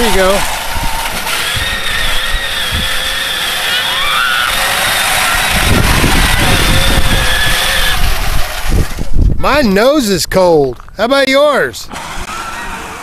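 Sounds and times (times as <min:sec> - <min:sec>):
electric motors whining: 0:00.0 - 0:09.3, 0:11.8 - 0:13.0
low rumbling: 0:00.0 - 0:09.8.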